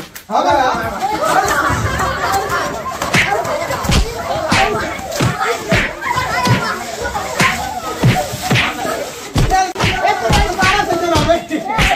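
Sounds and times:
children shouting: 0:00.6 - 0:11.9
sharp slap-like hits: 0:03.0 - 0:06.8, 0:07.4 - 0:11.9.

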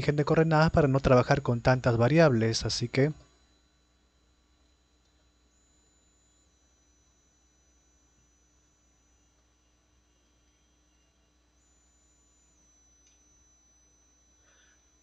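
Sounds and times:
faint steady hum and hiss: 0:00.0 - 0:15.0.

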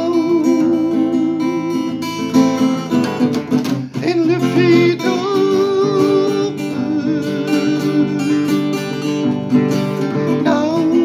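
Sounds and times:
man singing a ballad: 0:00.0 - 0:02.3, 0:03.8 - 0:09.4, 0:10.0 - 0:11.0
strummed acoustic guitar: 0:00.0 - 0:11.0.

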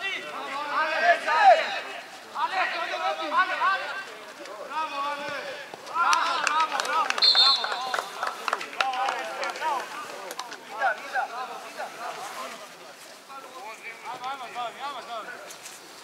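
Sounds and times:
players shouting: 0:00.0 - 0:04.1
referee's whistle blast: 0:07.2 - 0:07.9.

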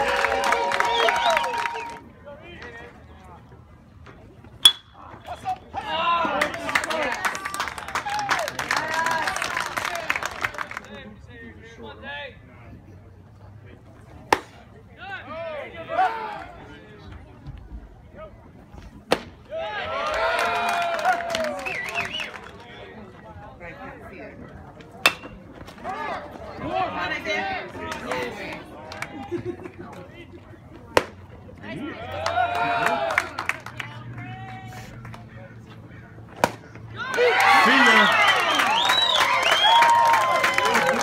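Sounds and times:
people shouting and cheering: 0:00.0 - 0:02.2, 0:05.0 - 0:10.5, 0:15.0 - 0:16.8, 0:19.5 - 0:22.3, 0:31.6 - 0:34.9, 0:36.9 - 0:41.0
baseball smacking into mitt: 0:36.4 - 0:36.7.

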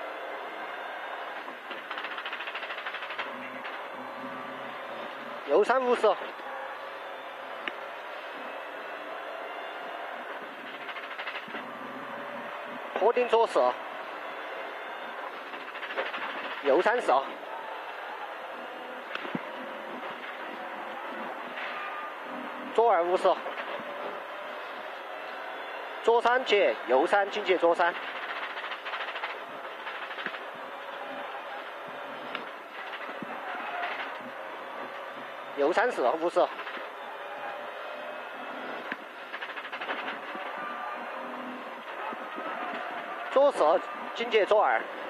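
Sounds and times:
race car engine drone: 0:00.0 - 0:45.0
rapid rattling: 0:01.6 - 0:03.9, 0:10.6 - 0:11.7, 0:15.4 - 0:17.3, 0:26.2 - 0:34.4, 0:38.9 - 0:40.8.

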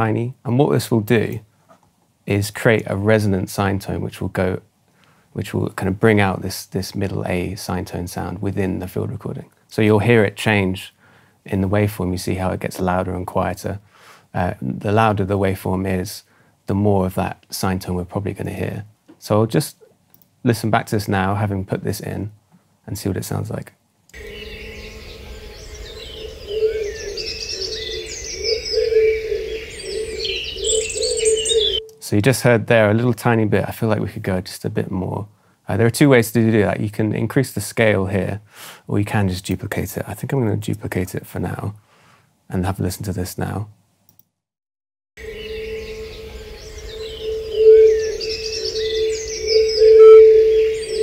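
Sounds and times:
birds chirping: 0:24.2 - 0:32.0, 0:45.2 - 0:51.0
faint resonant tone: 0:45.2 - 0:51.0.

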